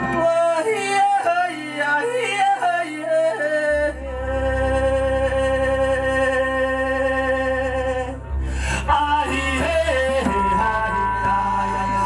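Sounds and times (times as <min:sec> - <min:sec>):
person singing ornamented vocal line: 0:00.0 - 0:12.0
deep bass note: 0:03.9 - 0:12.0.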